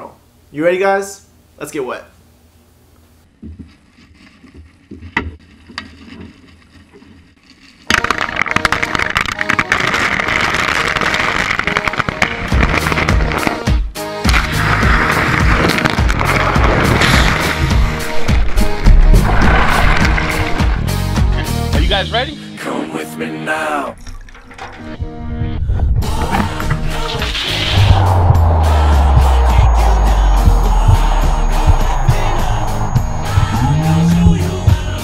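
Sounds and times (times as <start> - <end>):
ice cubes clattering into metal bucket: 7.9 - 13.5
music with low beat: 16.6 - 21.6, 25.0 - 35.0.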